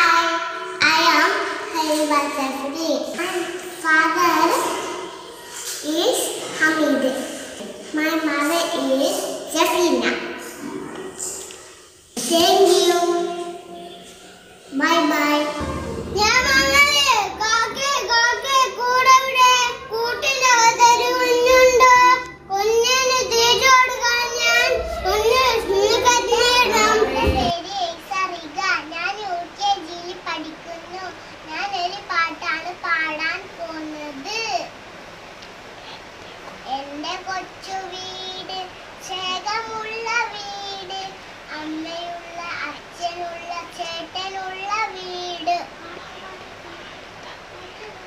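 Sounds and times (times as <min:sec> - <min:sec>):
young children singing: 0:10.4 - 0:27.5.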